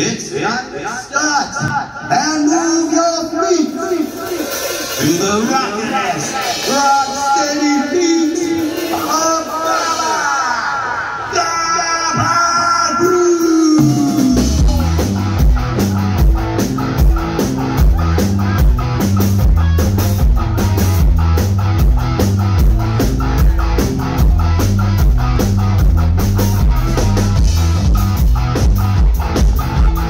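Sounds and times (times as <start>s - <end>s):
live rock band playing: 1.5s - 30.0s.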